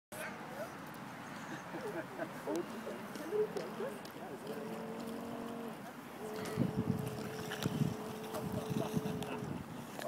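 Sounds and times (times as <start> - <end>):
outdoor background hiss: 0.2 - 10.0
person laughing: 8.2 - 9.8.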